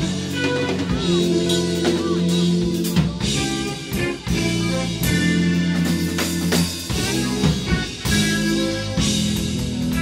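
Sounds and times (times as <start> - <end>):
jazz fusion band playing: 0.0 - 10.0.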